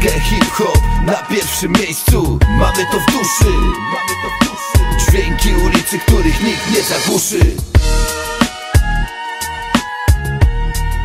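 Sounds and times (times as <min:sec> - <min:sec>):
rapped vocals: 0:00.0 - 0:07.8
heavy kick drums beat: 0:00.0 - 0:09.1.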